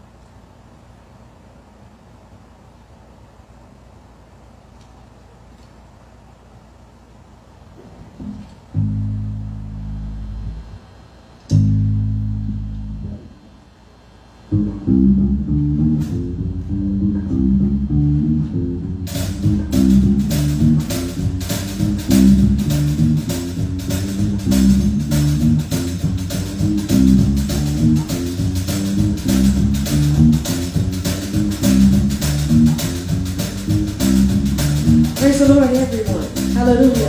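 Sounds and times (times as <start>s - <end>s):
bass guitar walking bass line: 8.1s - 13.4s, 14.5s - 37.0s
drum kit beat with cymbals: 18.9s - 37.0s.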